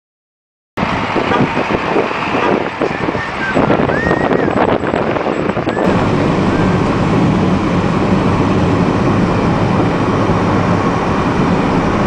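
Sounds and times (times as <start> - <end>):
road traffic: 0.8 - 12.0
wind buffeting microphone: 0.8 - 12.0.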